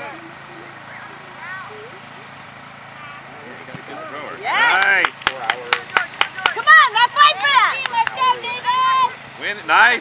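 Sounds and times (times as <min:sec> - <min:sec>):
distant voices shouting: 0:00.0 - 0:10.0
outdoor background noise: 0:00.0 - 0:10.0
loud drawn-out shout: 0:06.6 - 0:09.2.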